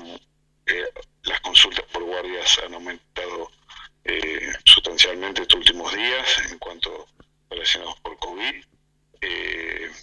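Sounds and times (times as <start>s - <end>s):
person talking: 0.0s - 10.0s.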